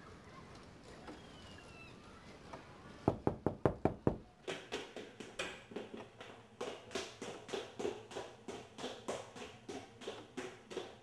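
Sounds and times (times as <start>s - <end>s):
rapid knocks: 3.1s - 6.0s.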